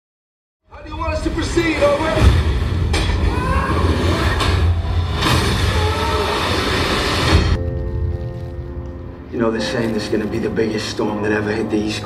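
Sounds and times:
dramatic trailer music: 1.3s - 11.9s.

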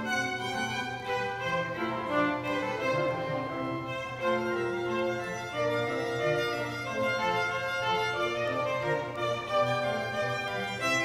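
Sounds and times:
solo violin melody: 0.0s - 11.0s.

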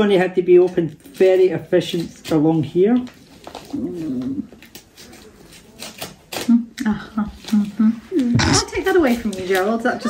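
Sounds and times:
packaging rustling and crinkling: 0.6s - 6.5s.

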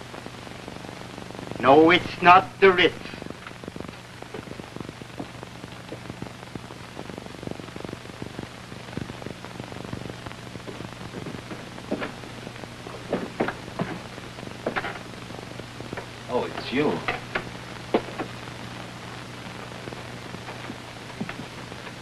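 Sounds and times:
film soundtrack hiss and crackle: 0.0s - 22.0s
low steady hum: 0.0s - 22.0s
faint clicks and knocks: 14.6s - 15.1s.

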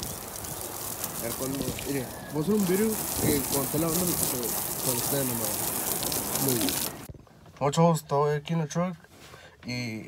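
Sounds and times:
water spraying hiss: 0.0s - 7.1s
person speaking: 1.2s - 7.0s.

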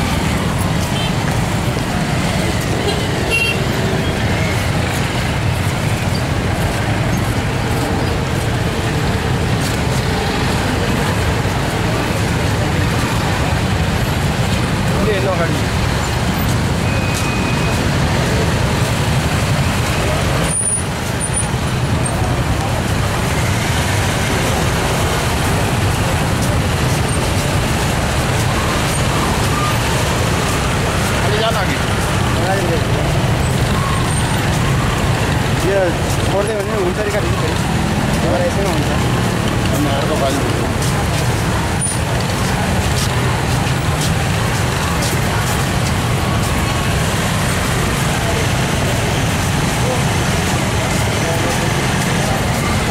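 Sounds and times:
motorcycle and traffic engines: 0.0s - 52.9s
voices of large crowd: 0.0s - 52.9s.

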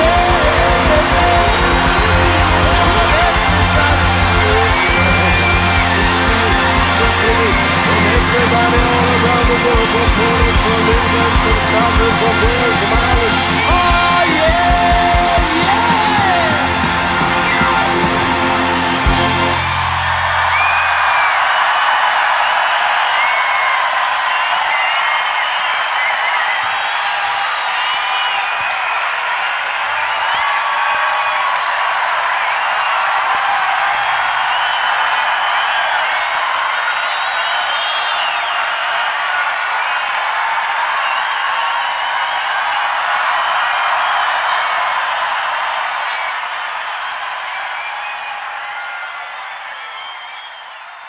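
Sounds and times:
crowd applauding: 0.0s - 51.0s
crowd cheering and screaming: 0.0s - 51.0s
high shouts: 0.0s - 51.0s.

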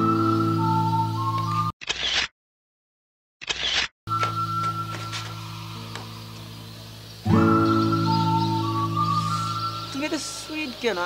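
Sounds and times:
background music sustained tones: 0.0s - 1.7s, 4.1s - 11.0s
camera shutter sound effect: 1.8s - 2.3s, 3.4s - 3.9s.

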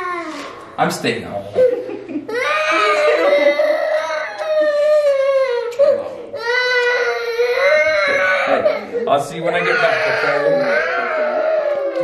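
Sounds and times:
toddler crying: 0.0s - 0.5s, 1.6s - 12.0s.

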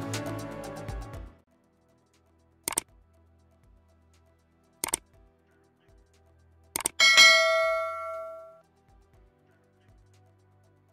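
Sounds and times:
bell-like ding: 7.0s - 8.6s.

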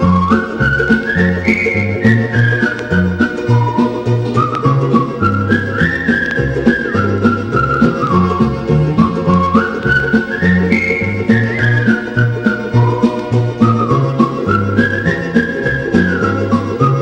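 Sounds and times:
whistled melody: 0.0s - 17.0s.

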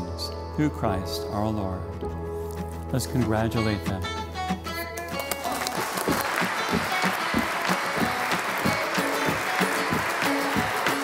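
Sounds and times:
plucked rhythm music: 2.0s - 11.0s
congregation applauding: 5.2s - 11.0s.

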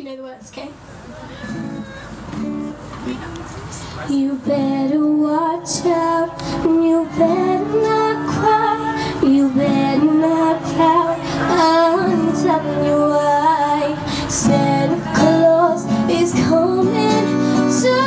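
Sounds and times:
acoustic guitar chords: 1.3s - 18.0s
woman singing into microphone: 4.0s - 18.0s.

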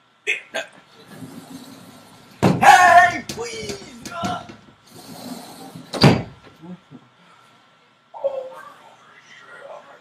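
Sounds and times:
door banging shut: 2.4s - 4.7s, 5.9s - 6.4s.

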